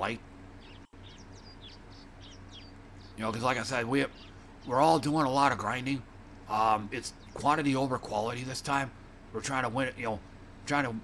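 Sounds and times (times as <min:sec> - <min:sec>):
steady hiss and low hum: 0:00.0 - 0:11.0
birds chirping and whistling: 0:00.5 - 0:05.9, 0:06.9 - 0:08.2.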